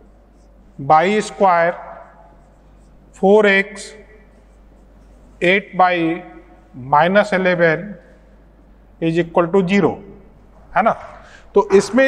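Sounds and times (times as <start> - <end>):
marker writing on whiteboard: 0.0 - 6.4
man speaking: 0.8 - 2.2, 3.2 - 4.2, 5.4 - 8.1, 9.0 - 12.0.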